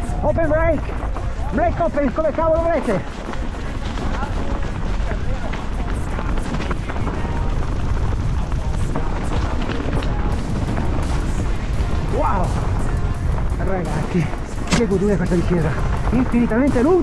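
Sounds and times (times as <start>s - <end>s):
bike clattering: 0.0s - 17.0s
tyres crunching over stones: 0.0s - 17.0s
wind buffeting microphone: 0.0s - 17.0s.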